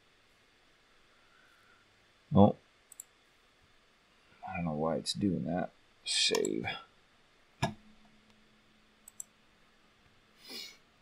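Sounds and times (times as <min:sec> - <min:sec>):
computer mouse clicks: 0:02.9 - 0:03.2, 0:06.3 - 0:06.6, 0:09.0 - 0:09.4.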